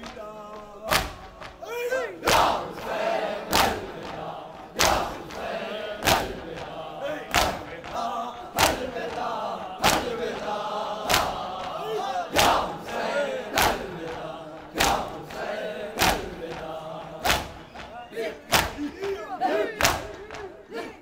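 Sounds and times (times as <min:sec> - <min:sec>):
crowd beating chests: 0:00.0 - 0:21.0
many voices chanting: 0:00.0 - 0:21.0.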